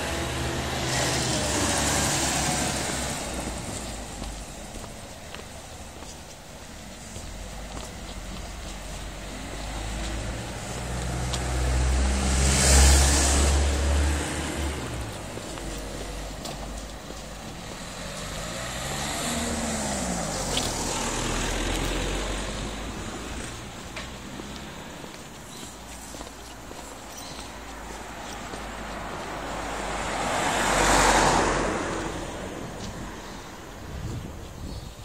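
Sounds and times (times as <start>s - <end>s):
vehicles driving past: 0.0s - 35.0s.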